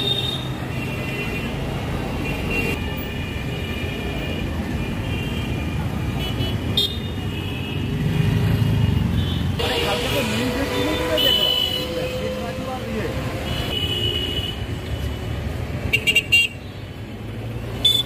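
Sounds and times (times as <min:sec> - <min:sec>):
car horns tooting: 0:09.4 - 0:14.8.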